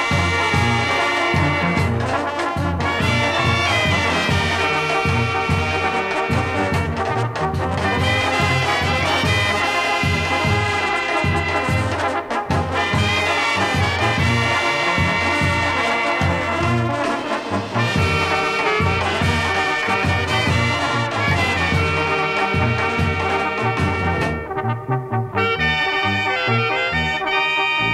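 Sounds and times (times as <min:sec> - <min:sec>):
trumpets and trombones melody: 0:00.0 - 0:27.9.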